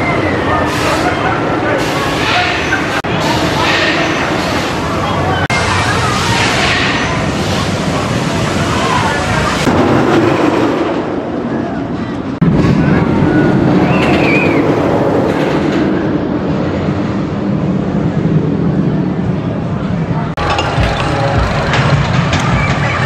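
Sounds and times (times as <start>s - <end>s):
faint voices: 0.0s - 23.0s
loud outdoor rumbling noise: 0.0s - 23.0s.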